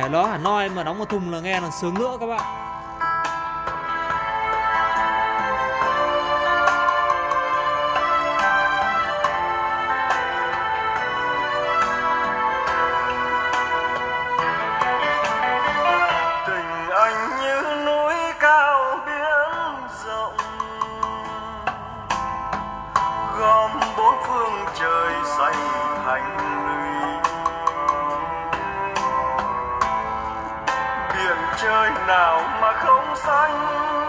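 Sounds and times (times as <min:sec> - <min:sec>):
song with sliding melody: 0:00.0 - 0:34.0.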